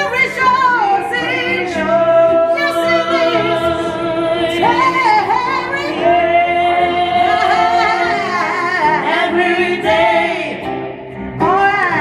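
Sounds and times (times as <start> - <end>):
gospel singing: 0.0 - 12.0.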